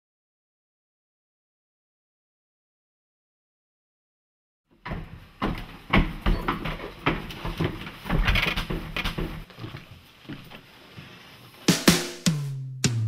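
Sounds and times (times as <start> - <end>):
knocks and bumps: 4.8 - 9.5.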